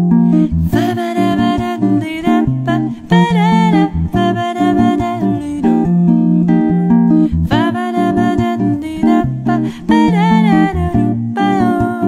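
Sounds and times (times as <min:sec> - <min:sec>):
archtop guitar playing: 0:00.0 - 0:12.0
woman singing long notes: 0:00.6 - 0:05.8, 0:07.5 - 0:12.0.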